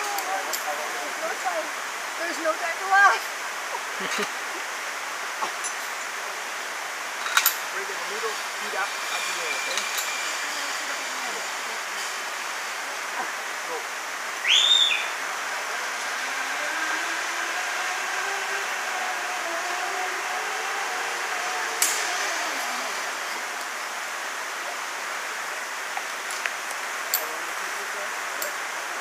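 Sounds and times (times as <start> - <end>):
rainforest background hiss: 0.0 - 29.0
zip-line pulley whirring: 8.4 - 12.8, 14.5 - 24.1
short rising whistle: 14.4 - 15.2.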